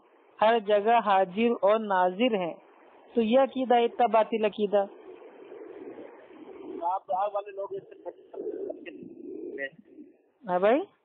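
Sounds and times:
bird cooing: 0:03.5 - 0:10.3.

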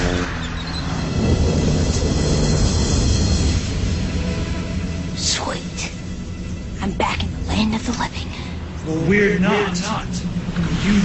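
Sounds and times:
loud steady rumbling: 0:00.0 - 0:11.0
low drone: 0:00.0 - 0:11.0.

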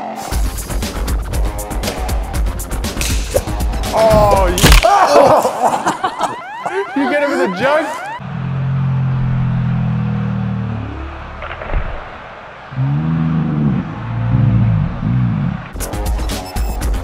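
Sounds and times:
slow low cries: 0:12.7 - 0:15.7
slowed-down low yell: 0:12.7 - 0:15.7.

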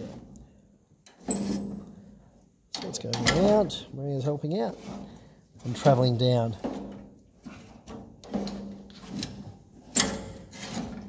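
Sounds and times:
planting mechanism clunking and rubbing: 0:01.0 - 0:11.0.

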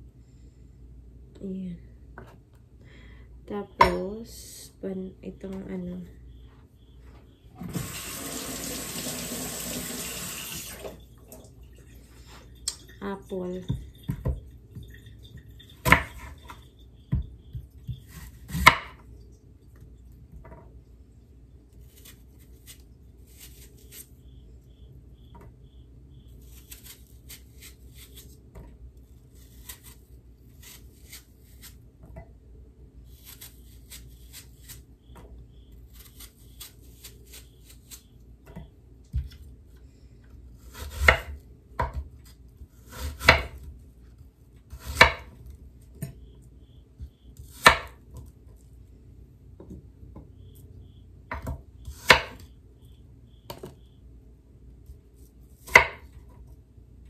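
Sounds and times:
knife chopping on cutting board: 0:17.9 - 0:19.0, 0:40.7 - 0:42.1, 0:42.9 - 0:43.6, 0:51.3 - 0:52.4, 0:55.6 - 0:56.1.

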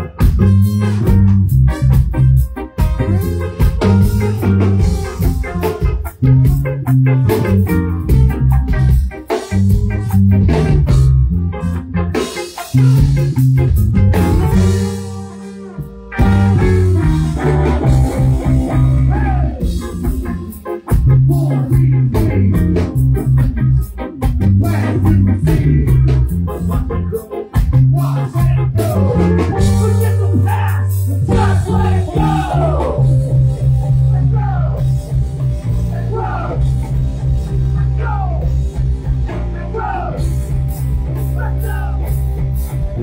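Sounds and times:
bass guitar: 0:00.0 - 0:43.0
drums: 0:00.0 - 0:43.0
electric guitar: 0:00.0 - 0:43.0
man singing: 0:18.9 - 0:19.8, 0:21.1 - 0:23.0, 0:24.4 - 0:33.3, 0:33.9 - 0:34.9, 0:35.7 - 0:36.8, 0:37.7 - 0:38.6, 0:39.3 - 0:40.4, 0:41.3 - 0:42.2.

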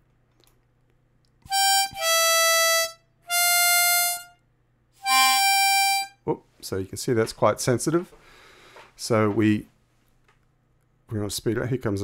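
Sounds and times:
harmonica single notes: 0:01.4 - 0:06.3.

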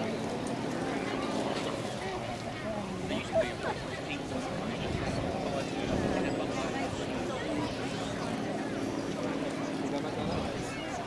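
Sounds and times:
chatter of spectators: 0:00.0 - 0:11.0.

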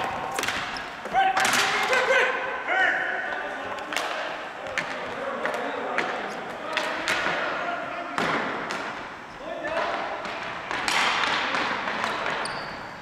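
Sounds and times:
hockey sticks striking ball: 0:00.0 - 0:02.2, 0:03.3 - 0:13.0
shoe squeaks: 0:12.4 - 0:13.0.

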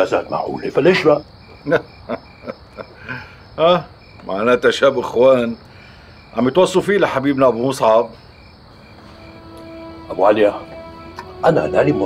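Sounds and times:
crickets chirping: 0:00.0 - 0:12.0
soft sustained music notes: 0:08.9 - 0:12.0.

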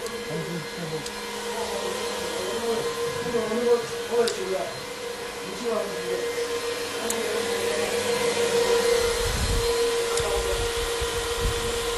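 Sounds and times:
cooling fans whirring: 0:00.0 - 0:11.9.

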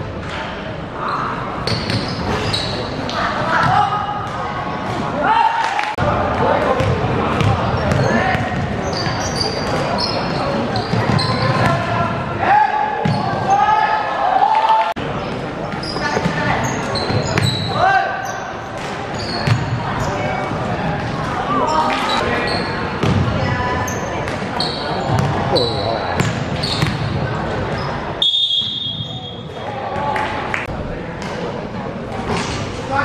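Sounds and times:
shouting voices echoing: 0:05.1 - 0:15.0, 0:16.0 - 0:18.6
basketball bouncing on court: 0:06.8 - 0:09.9, 0:10.8 - 0:11.9, 0:19.4 - 0:19.8, 0:23.0 - 0:23.4, 0:25.1 - 0:25.4, 0:26.2 - 0:27.2.

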